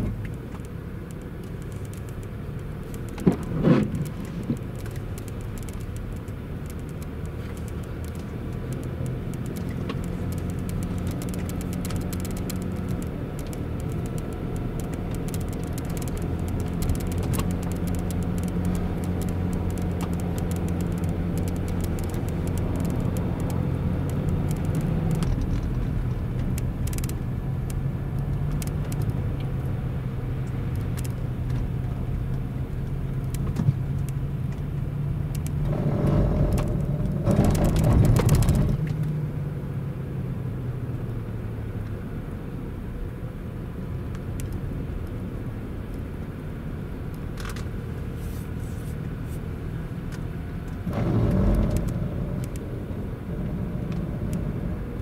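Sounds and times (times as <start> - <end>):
brakes grinding buzz: 0.0 - 39.4, 44.1 - 55.0
car engine running: 0.0 - 39.9, 43.4 - 55.0.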